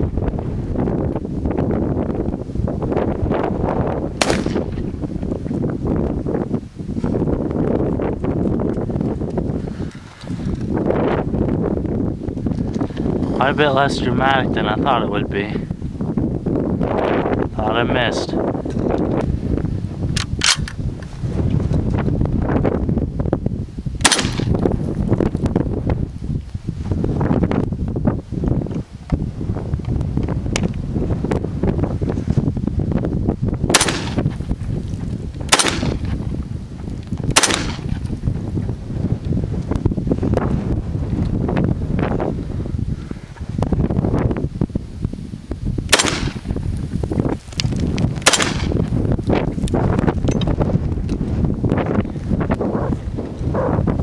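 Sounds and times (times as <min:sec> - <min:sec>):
wind buffeting microphone: 0:00.0 - 0:54.0
rifle shots: 0:04.2 - 0:04.8, 0:24.0 - 0:24.5, 0:33.7 - 0:34.2, 0:35.5 - 0:36.1, 0:37.4 - 0:38.0, 0:45.9 - 0:46.5, 0:48.2 - 0:48.8.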